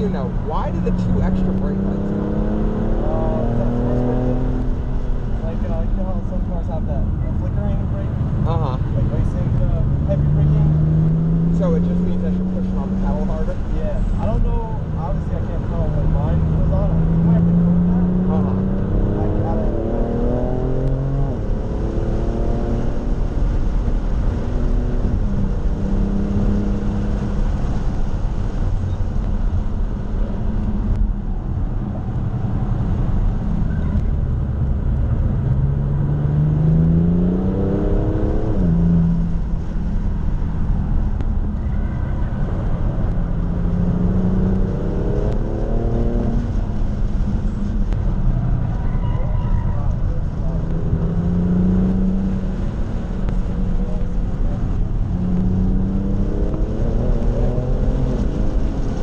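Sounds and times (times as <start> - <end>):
car engine accelerating: 0.0 - 59.0
road and wind noise: 0.0 - 59.0.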